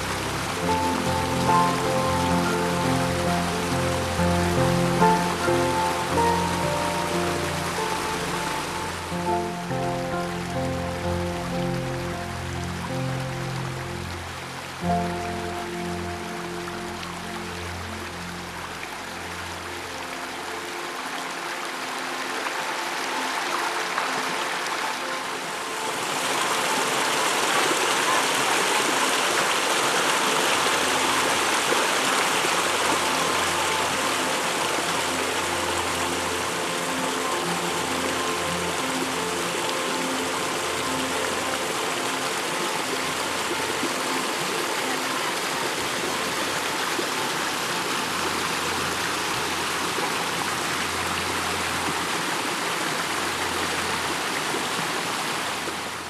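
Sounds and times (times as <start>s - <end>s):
water rushing over rocks: 0.0s - 56.0s.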